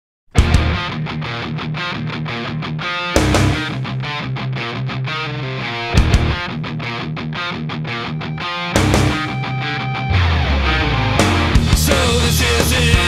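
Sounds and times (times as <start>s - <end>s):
full band accents with cymbal: 0.4s - 0.9s, 3.2s - 4.0s, 8.8s - 13.0s
distorted electric guitar riff: 0.4s - 13.0s.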